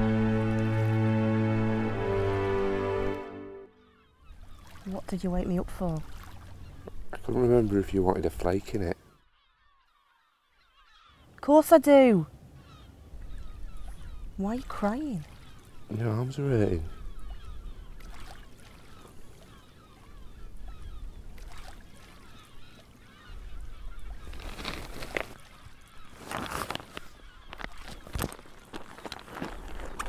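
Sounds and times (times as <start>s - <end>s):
distant flock of birds calling: 3.7s - 29.8s.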